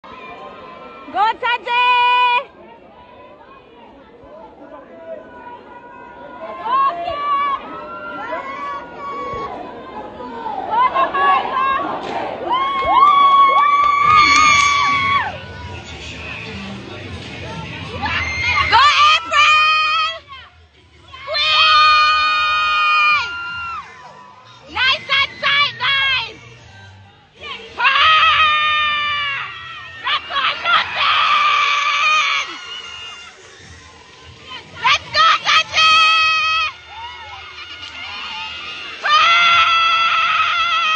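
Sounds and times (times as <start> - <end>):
chatter of people in a hall: 0.0 - 12.6, 13.2 - 19.4, 23.3 - 31.0, 31.8 - 39.1.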